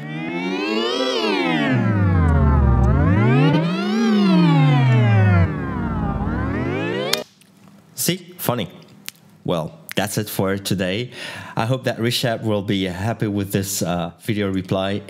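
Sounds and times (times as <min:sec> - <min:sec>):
siren-like synthesizer glide: 0:00.0 - 0:07.2.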